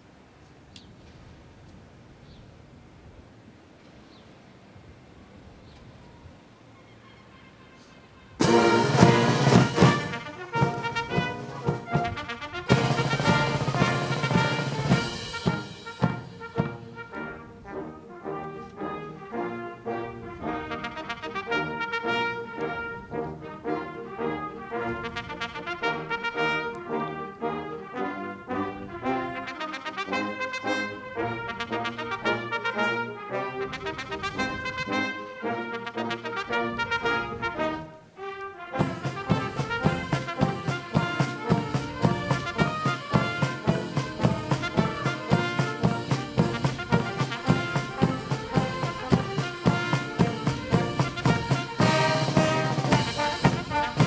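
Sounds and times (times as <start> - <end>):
military brass band playing: 7.2 - 54.0.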